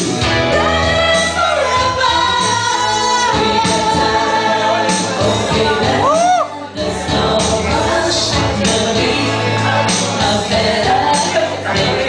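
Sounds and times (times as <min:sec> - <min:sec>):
instrumental accompaniment with bass: 0:00.0 - 0:12.0
woman singing into microphone: 0:00.0 - 0:12.0.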